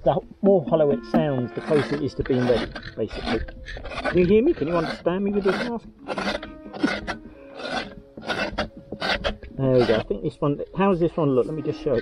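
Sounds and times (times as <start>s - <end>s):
scraping out pumpkin flesh: 1.2s - 10.2s.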